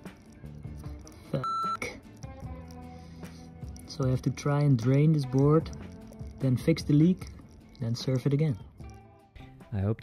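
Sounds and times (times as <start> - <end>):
background music: 0.0 - 10.0
high-pitched censor bleep: 1.4 - 1.9.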